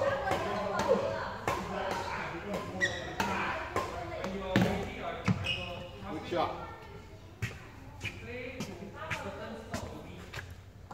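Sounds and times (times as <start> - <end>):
badminton racket hitting shuttlecock: 0.0 - 5.4.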